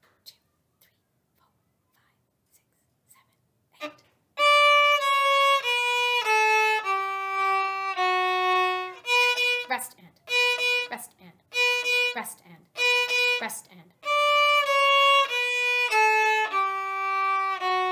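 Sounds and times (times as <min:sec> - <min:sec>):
whispered counting: 0:00.0 - 0:04.1, 0:09.7 - 0:10.3, 0:10.9 - 0:11.5, 0:12.1 - 0:12.8, 0:13.4 - 0:14.0
bowed violin notes: 0:03.8 - 0:17.9.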